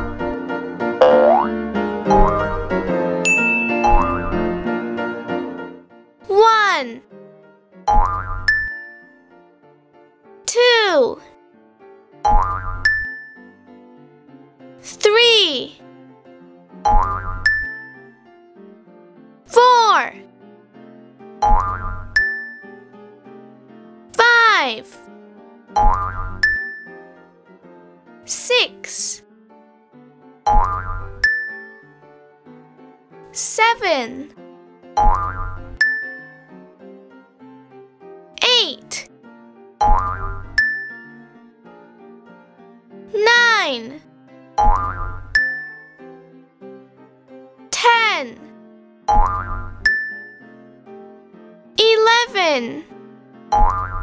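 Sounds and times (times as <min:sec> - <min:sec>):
light children's background music: 0:00.0 - 0:11.4, 0:14.3 - 0:54.0
bright ding: 0:03.3 - 0:04.1.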